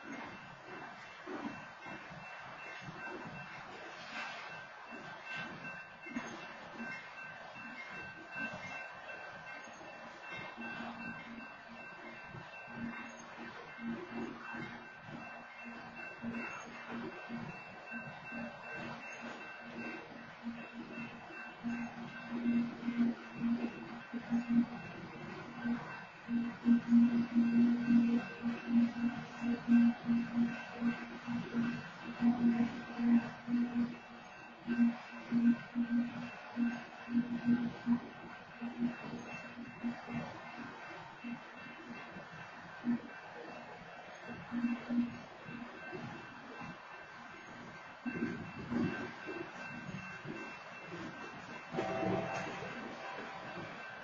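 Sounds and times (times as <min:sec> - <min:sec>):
freight train rolling slowly: 0:00.0 - 0:54.0
low pulsing tone: 0:02.8 - 0:54.0.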